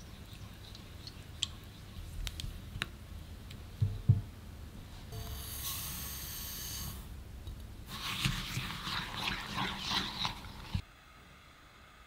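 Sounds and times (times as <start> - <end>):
spatula stirring with scraping: 7.9 - 10.8.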